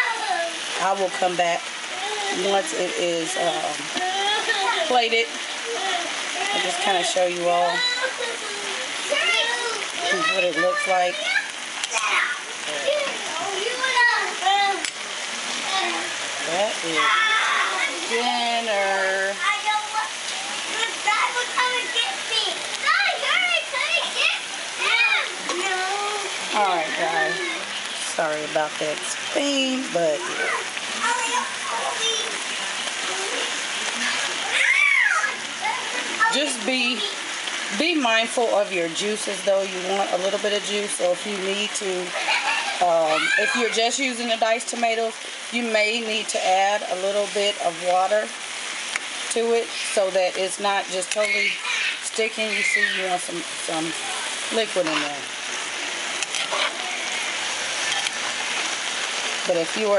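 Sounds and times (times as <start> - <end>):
child calling out: 0.0 - 0.6, 1.9 - 2.6, 3.9 - 5.0, 5.6 - 7.0, 7.6 - 14.8, 17.0 - 18.0, 20.7 - 26.4, 27.0 - 27.6, 30.2 - 32.3, 33.0 - 37.2, 42.4 - 43.9, 51.2 - 53.1
stew simmering with hiss: 0.0 - 59.9.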